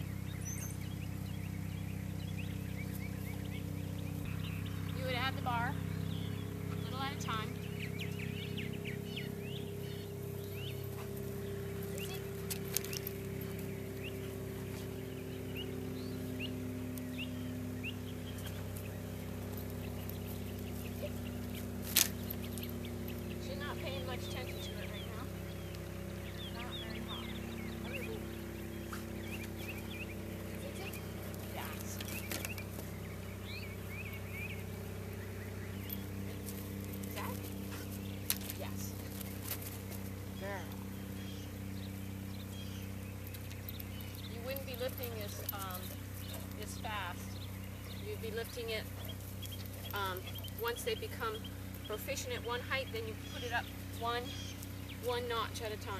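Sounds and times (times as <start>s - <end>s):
bird chirping: 0.0s - 55.9s
steady low hum: 0.0s - 55.9s.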